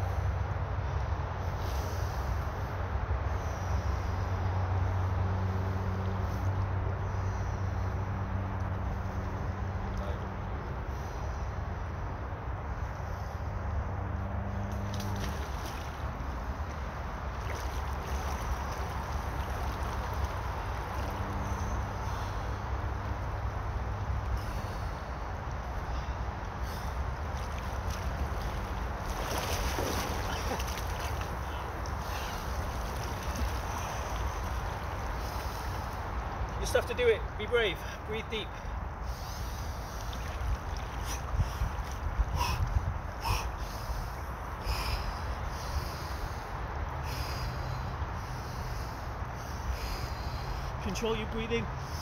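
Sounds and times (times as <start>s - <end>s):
river water rippling: 0.0s - 52.0s
men breathing deeply: 1.4s - 9.8s, 10.6s - 14.5s, 21.4s - 27.4s, 29.0s - 36.5s, 37.8s - 50.8s
water splashing: 14.7s - 22.5s, 26.6s - 36.2s, 39.4s - 42.6s
wind rumble on microphone: 38.8s - 47.0s.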